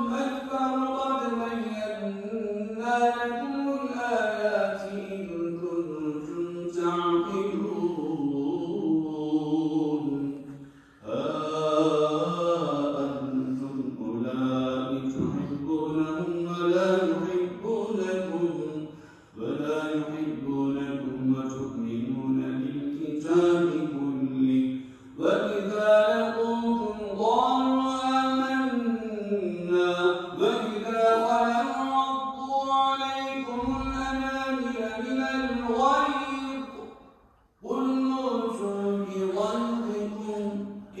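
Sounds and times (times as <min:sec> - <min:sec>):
man chanting melodically: 0:00.0 - 0:36.8, 0:37.6 - 0:41.0.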